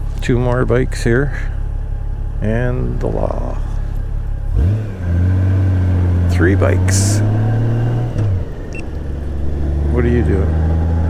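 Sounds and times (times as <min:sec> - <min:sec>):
motorcycle engine running: 0:00.0 - 0:07.2, 0:08.1 - 0:11.0.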